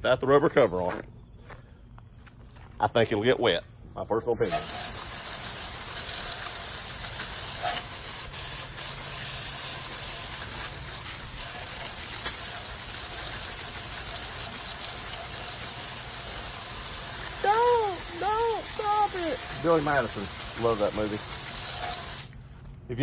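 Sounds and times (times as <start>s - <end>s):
hose spraying water on metal: 4.3s - 22.4s.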